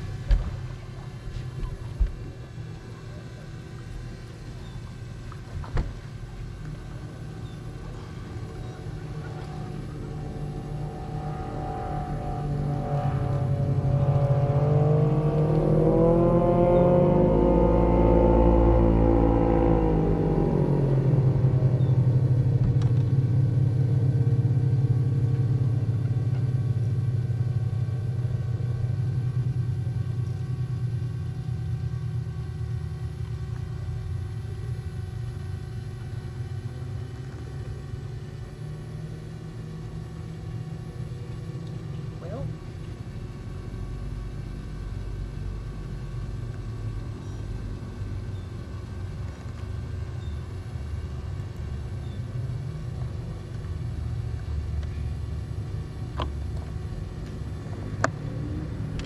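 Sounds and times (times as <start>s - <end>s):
boat engine rumble: 0.0s - 59.0s.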